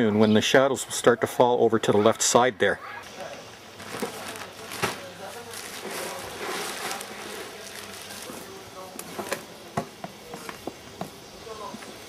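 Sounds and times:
plastic bag crinkling: 3.8 - 8.6
soil pouring into a wheelbarrow: 3.9 - 8.6.

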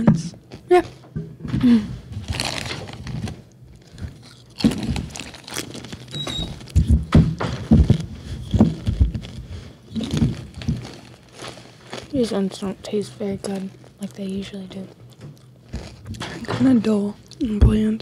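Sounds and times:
chip bag crinkling: 2.1 - 16.5
chips being crunched and chewed: 2.2 - 6.9, 7.9 - 12.7, 13.3 - 16.3.

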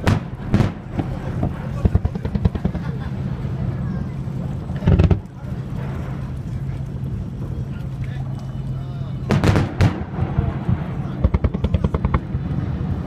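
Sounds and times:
fireworks crackling: 0.0 - 3.1, 9.2 - 13.0
boat engine humming: 0.0 - 13.0
fireworks boom: 9.3 - 13.0.

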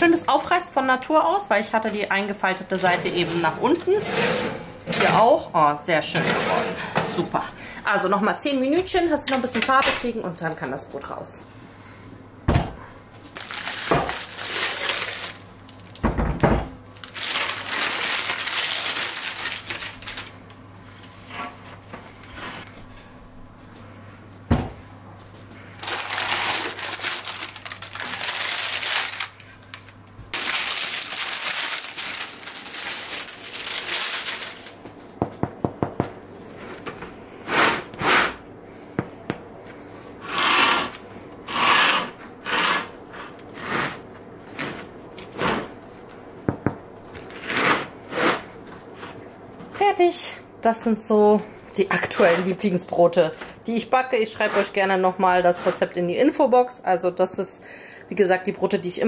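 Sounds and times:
low steady hum: 0.0 - 59.0
baking parchment rustling: 1.7 - 4.1, 13.3 - 16.0, 17.0 - 20.4, 25.8 - 35.0.

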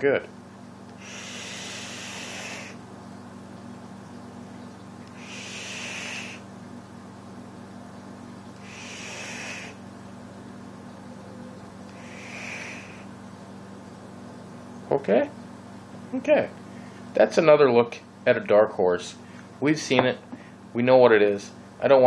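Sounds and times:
steady low hum: 0.0 - 22.0
breathy vaping hisses: 0.9 - 2.8, 5.1 - 6.5, 8.6 - 9.8, 11.9 - 13.1.

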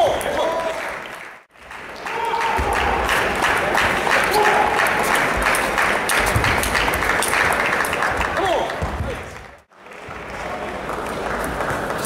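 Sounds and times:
spectators applauding: 0.0 - 12.0.

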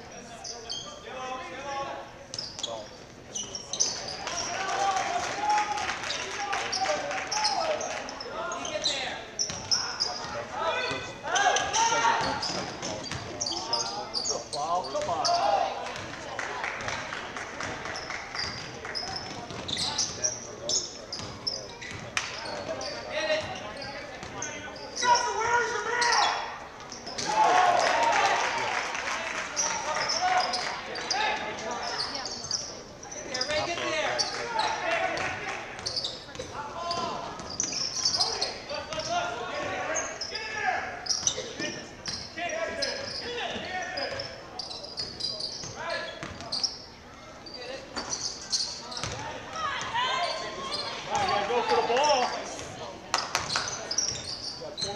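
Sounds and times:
voices of players and spectators: 0.0 - 54.9.

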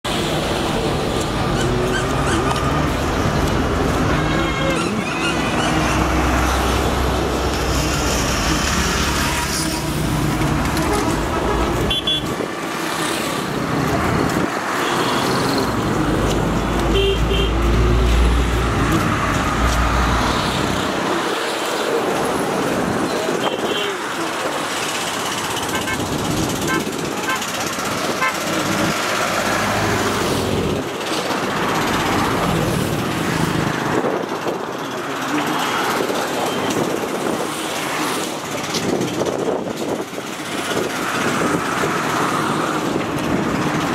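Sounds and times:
vehicle engines rumbling past: 0.2 - 43.9
car horn toots: 10.8 - 12.4, 16.9 - 17.6.

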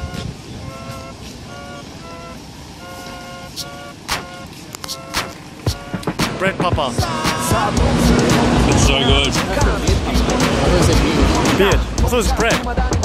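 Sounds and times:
two-tone car horn toots: 0.0 - 6.2.

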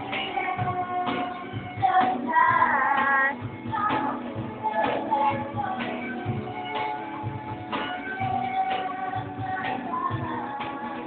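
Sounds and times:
cajon beat: 0.0 - 11.0
women singing: 0.0 - 11.0.

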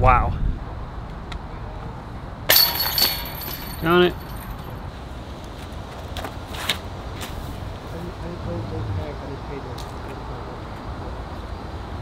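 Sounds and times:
disc clinking into basket: 2.5 - 4.6
disc hitting metal chains: 2.5 - 4.7.

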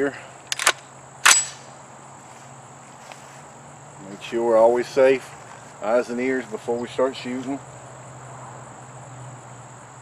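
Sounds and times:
metallic clack of gun loading: 0.5 - 1.6.

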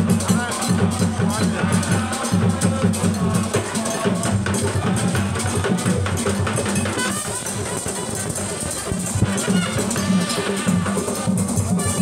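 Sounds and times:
music with drums and percussion: 0.0 - 12.0.

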